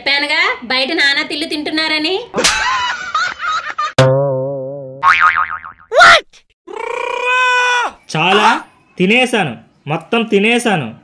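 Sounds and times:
springy wobbling boing: 0:04.0 - 0:05.9.

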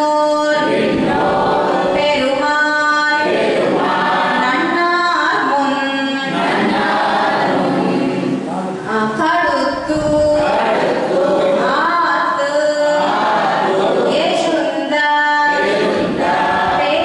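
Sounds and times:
woman singing unaccompanied: 0:00.0 - 0:03.4, 0:04.2 - 0:06.4, 0:08.9 - 0:10.7, 0:11.5 - 0:13.2, 0:14.1 - 0:15.7, 0:16.6 - 0:17.0.

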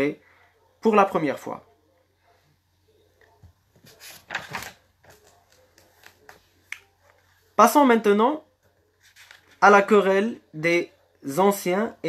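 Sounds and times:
papers handled: 0:03.7 - 0:07.3, 0:09.0 - 0:09.6.

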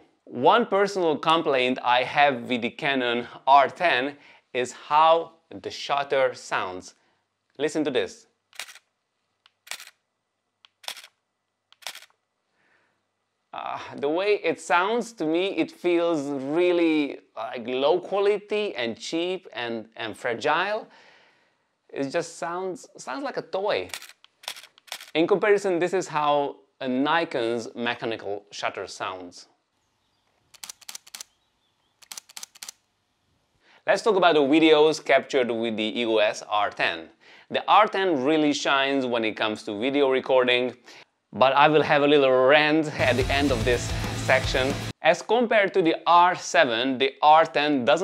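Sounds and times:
camera shutter clacking: 0:08.5 - 0:08.9, 0:09.5 - 0:10.0, 0:10.7 - 0:11.2, 0:11.8 - 0:12.2, 0:23.9 - 0:25.1, 0:30.6 - 0:31.3, 0:32.0 - 0:32.8.

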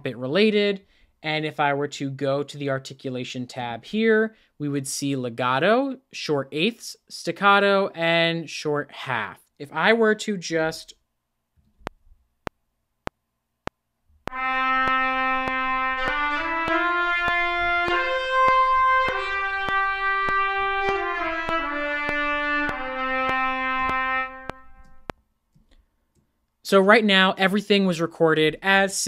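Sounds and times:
metronome clicks: 0:14.2 - 0:25.2
solo trumpet phrase: 0:14.3 - 0:25.1.

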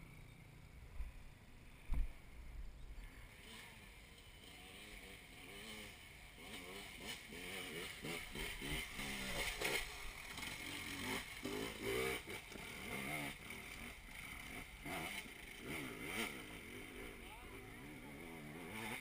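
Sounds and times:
dirt bike engine revving: 0:03.2 - 0:19.0.

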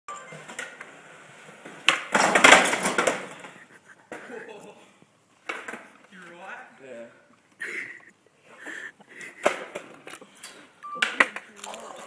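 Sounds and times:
skateboard scraping and clattering: 0:00.3 - 0:04.3
skateboard pop: 0:01.6 - 0:03.4.

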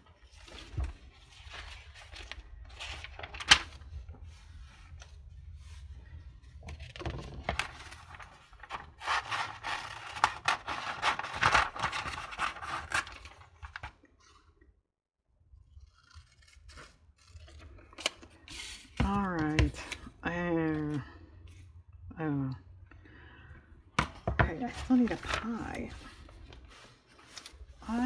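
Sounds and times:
paper rustling: 0:00.0 - 0:14.4, 0:24.3 - 0:28.0.

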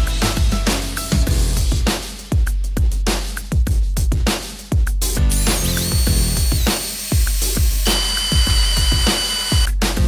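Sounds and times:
electronic music with steady beat: 0:02.4 - 0:10.0
milling machine whine cutting metal: 0:05.5 - 0:09.7.

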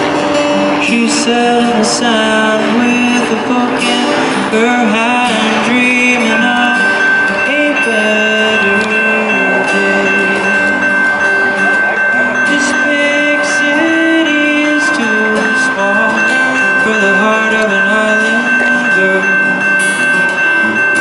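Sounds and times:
amplified acoustic folk music: 0:00.0 - 0:21.0.

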